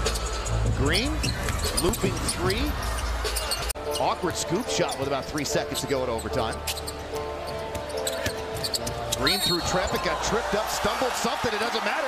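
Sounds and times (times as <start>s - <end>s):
arena music: 0.0s - 12.0s.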